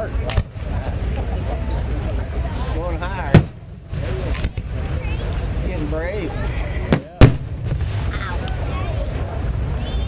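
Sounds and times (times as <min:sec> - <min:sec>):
firework boom: 0:03.3 - 0:05.0, 0:06.8 - 0:08.4.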